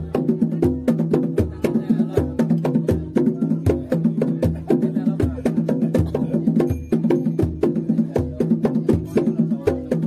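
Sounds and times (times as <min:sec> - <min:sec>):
deep drum beat: 0:00.0 - 0:10.0
sharp clicking percussion: 0:02.4 - 0:10.0.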